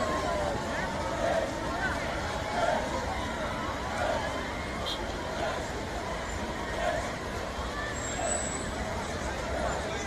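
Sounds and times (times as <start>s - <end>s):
crowd voices: 0.0s - 10.0s
slow-moving vehicles: 0.0s - 10.0s.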